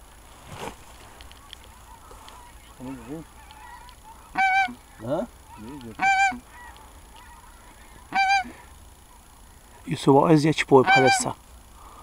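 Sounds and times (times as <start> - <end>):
goose honk: 1.8 - 8.6, 10.8 - 11.4.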